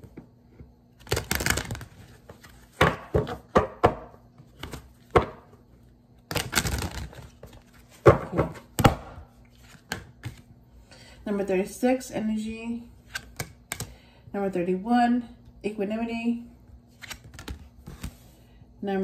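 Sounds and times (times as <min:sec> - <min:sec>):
cards being shuffled by hand: 0:01.0 - 0:03.4, 0:06.3 - 0:08.7, 0:16.9 - 0:18.2.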